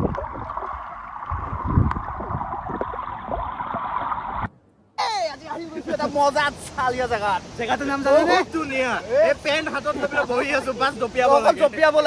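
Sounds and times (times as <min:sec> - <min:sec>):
underwater stream rushing: 0:00.0 - 0:04.5
low underwater thumps: 0:00.0 - 0:04.6.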